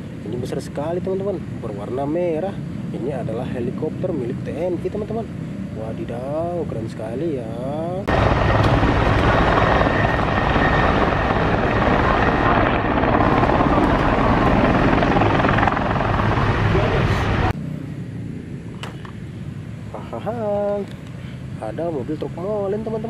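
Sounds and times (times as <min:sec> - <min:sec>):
helicopter rotor and turbine: 0:07.5 - 0:20.7.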